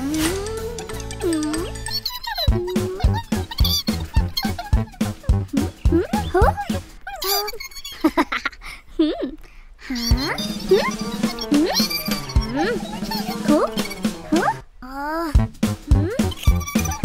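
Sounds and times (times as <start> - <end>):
playful cartoon music: 0.0 - 8.0, 9.9 - 17.0
squeaky sliding sound effects: 10.0 - 14.6, 16.1 - 17.0.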